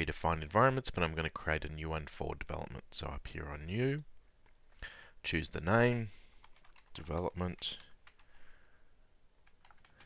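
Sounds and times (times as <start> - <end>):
faint keyboard typing: 6.3 - 8.5, 9.4 - 10.0.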